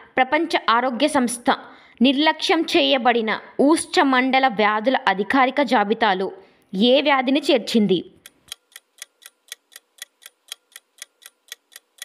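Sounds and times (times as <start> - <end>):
countdown timer ticking: 8.2 - 12.0.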